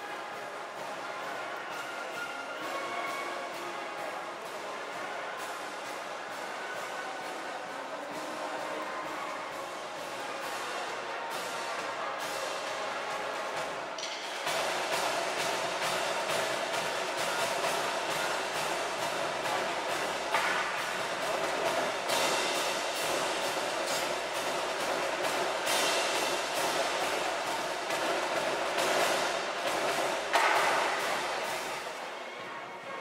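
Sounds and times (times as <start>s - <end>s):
marching band brass: 0.0s - 33.0s
drum strokes: 0.4s - 32.1s.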